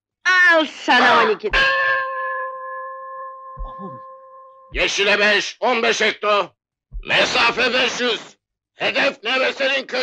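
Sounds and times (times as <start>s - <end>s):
ship's bell ringing: 1.5s - 5.0s
stone striking bell: 1.5s - 5.0s.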